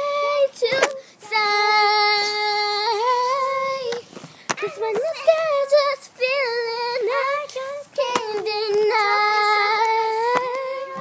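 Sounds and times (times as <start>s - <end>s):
girl singing held vowel: 0.0s - 11.0s.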